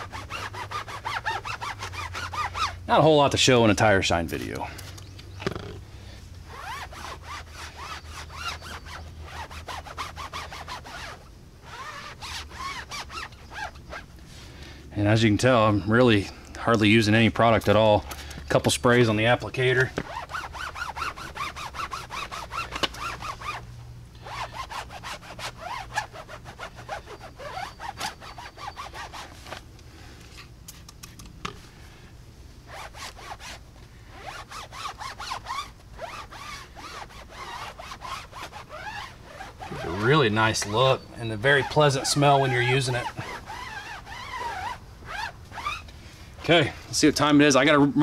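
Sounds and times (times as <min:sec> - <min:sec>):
short squeaks: 0:00.0 - 0:02.8, 0:06.5 - 0:14.1, 0:18.0 - 0:29.6, 0:32.7 - 0:46.8
foam pad rubbing rubber tire: 0:00.0 - 0:03.2, 0:06.5 - 0:14.1, 0:19.6 - 0:29.6, 0:32.7 - 0:45.8.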